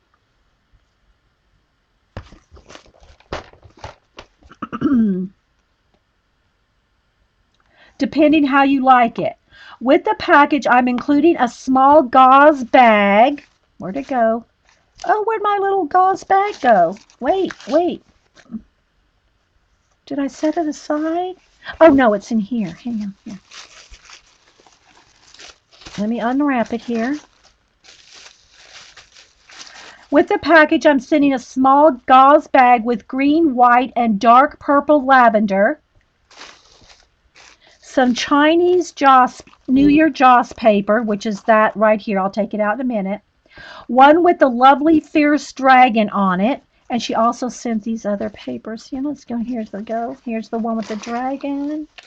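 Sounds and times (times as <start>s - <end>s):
wrapping crinkling and rustling: 2.2s - 4.5s, 12.0s - 18.6s, 19.8s - 30.8s, 36.2s - 42.0s, 47.8s - 52.0s.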